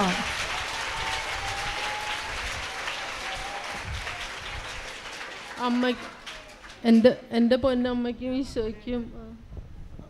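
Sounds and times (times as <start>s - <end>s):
crowd applauding: 0.0s - 7.2s
woman speaking: 5.6s - 6.1s, 6.8s - 9.4s.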